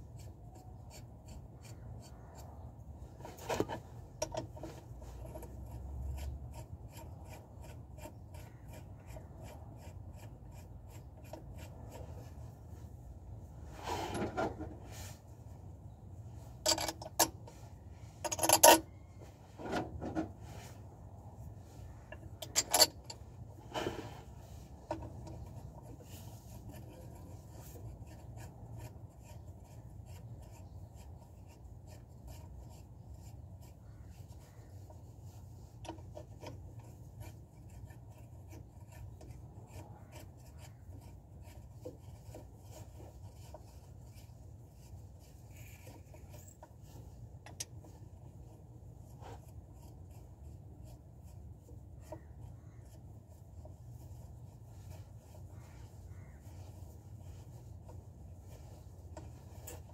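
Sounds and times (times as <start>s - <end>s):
hand tools scraping and clicking: 0.1s - 12.4s, 13.7s - 15.0s, 16.5s - 20.7s, 21.4s - 59.9s
bird calling faintly: 52.0s - 53.1s, 55.4s - 56.9s.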